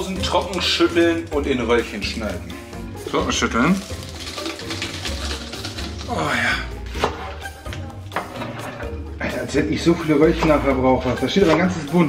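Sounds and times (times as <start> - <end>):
person's voice: 0.0 - 2.4
background music: 0.0 - 12.0.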